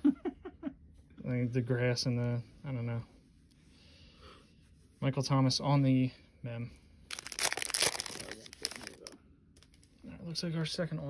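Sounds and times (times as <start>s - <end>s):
foil wrapper crinkling: 7.1s - 10.0s.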